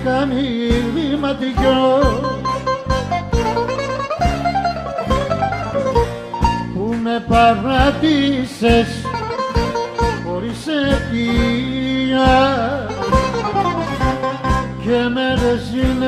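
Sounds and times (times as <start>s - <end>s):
bass and percussion beat: 0.0s - 16.0s
plucked string melody: 0.0s - 16.0s.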